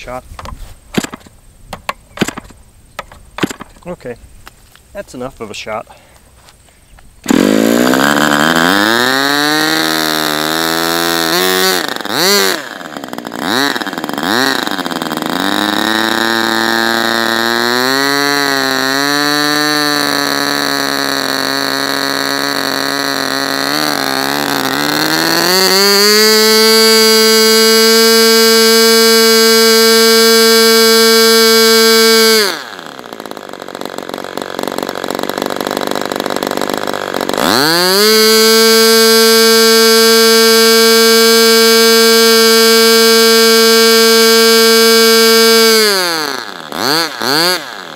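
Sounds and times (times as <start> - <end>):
electric starter spinning: 7.2 - 47.9
model engine and propeller screaming: 7.3 - 47.9.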